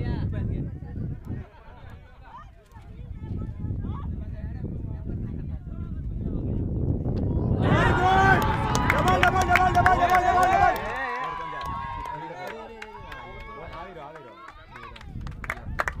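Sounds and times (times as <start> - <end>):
people shouting long cries: 7.6 - 13.7.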